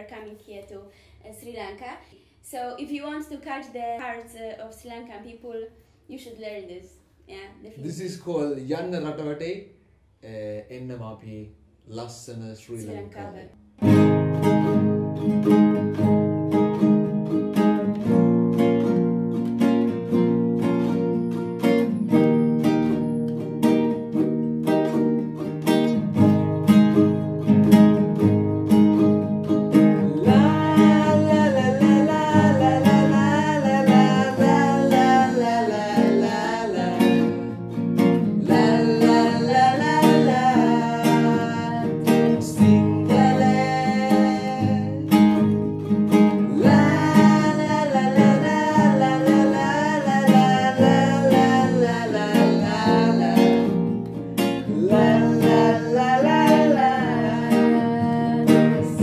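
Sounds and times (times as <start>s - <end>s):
acoustic guitar strummed: 13.6s - 59.0s
ukulele strummed: 13.8s - 59.0s
man singing: 30.0s - 37.5s, 38.4s - 45.2s, 46.4s - 53.9s, 54.6s - 59.0s.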